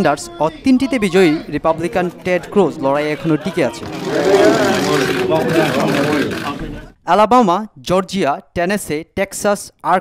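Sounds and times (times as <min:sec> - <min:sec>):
crowd chatter: 0:00.3 - 0:07.0.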